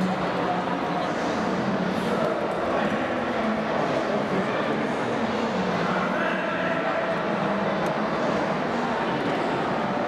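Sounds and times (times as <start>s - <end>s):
busy hall background noise: 0.0s - 10.0s.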